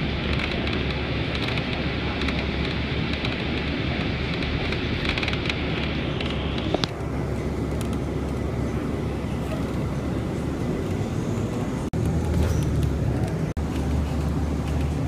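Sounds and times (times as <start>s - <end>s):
train low rumble: 0.0s - 15.0s.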